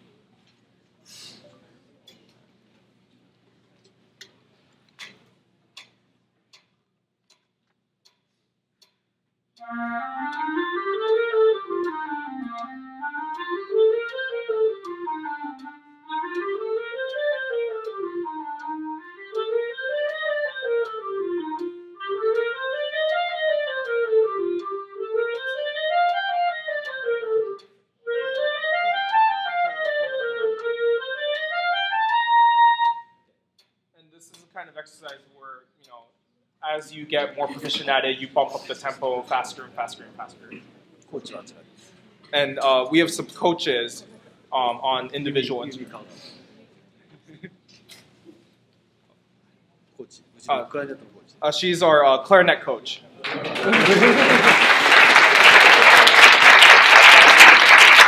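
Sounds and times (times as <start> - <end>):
metronome clicks: 7.3 - 33.8
clarinets playing scales: 9.6 - 33.1.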